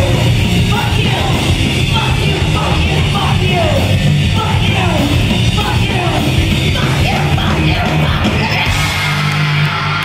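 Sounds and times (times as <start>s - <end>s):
punk rock band playing: 0.0s - 10.0s
yelled vocals: 0.0s - 10.0s.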